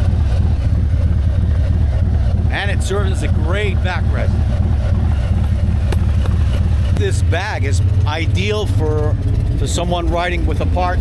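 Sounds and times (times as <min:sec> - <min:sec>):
motorcycle engine rumbling: 0:00.0 - 0:11.0.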